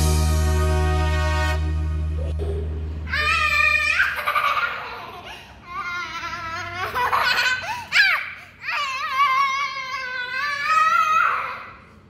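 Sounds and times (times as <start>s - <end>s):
girl giggling and squealing: 2.2s - 11.6s.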